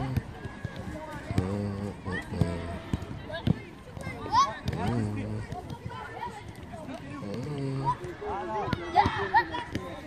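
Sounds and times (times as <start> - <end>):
children and coaches calling out: 0.0 - 10.0.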